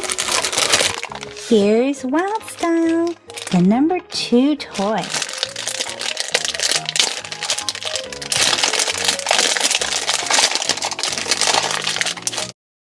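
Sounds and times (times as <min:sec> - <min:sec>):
plastic packaging crackling: 0:00.0 - 0:03.8, 0:04.6 - 0:12.6
background music from tablet: 0:00.0 - 0:12.6.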